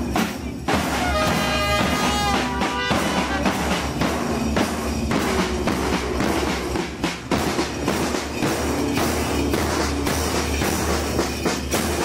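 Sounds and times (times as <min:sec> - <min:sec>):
marching snare and bass drums: 0:00.0 - 0:12.0.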